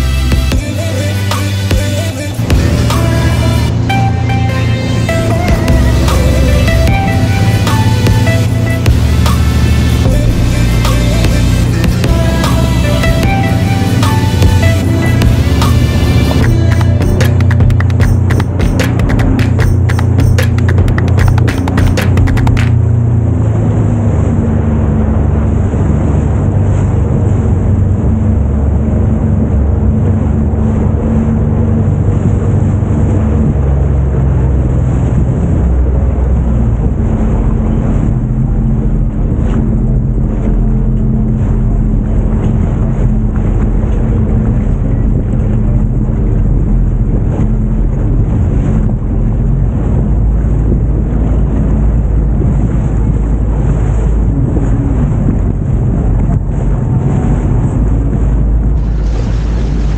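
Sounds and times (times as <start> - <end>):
water splashing: 0.0 - 59.9
watercraft engine drone: 0.0 - 59.9
wind rumble on microphone: 0.0 - 59.9.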